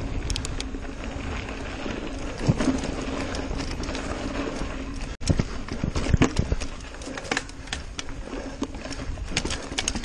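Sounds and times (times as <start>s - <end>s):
mountain bike clattering over rocks: 2.3s - 10.0s.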